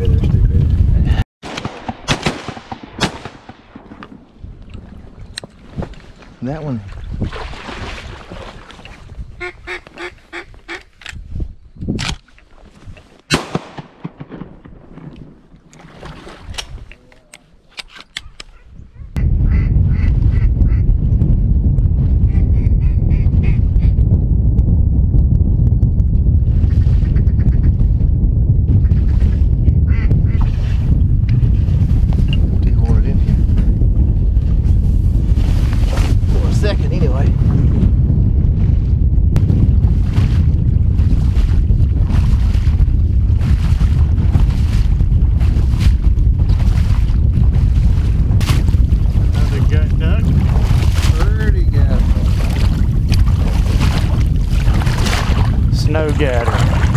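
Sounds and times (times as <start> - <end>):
wind buffeting microphone: 0.0 - 1.2, 2.0 - 13.1, 18.2 - 56.9
duck quacking: 9.4 - 10.8.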